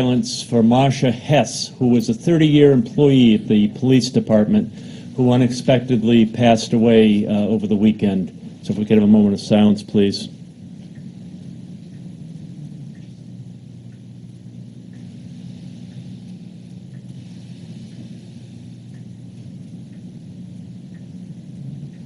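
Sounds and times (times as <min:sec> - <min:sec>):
steady low hum: 0:00.0 - 0:22.0
faint ticks: 0:10.4 - 0:22.0.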